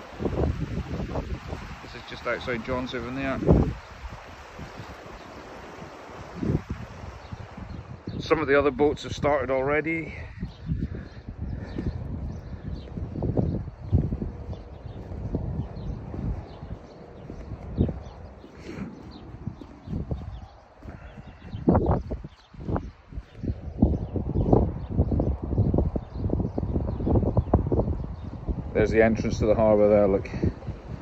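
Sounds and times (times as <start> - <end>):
wind rumbling on microphone: 0.0 - 31.0
footsteps on concrete: 10.6 - 23.5.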